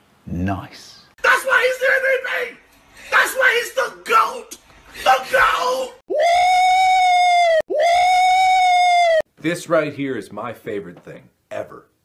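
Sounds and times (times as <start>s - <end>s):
man's high-pitched vocal wail: 1.2s - 9.2s.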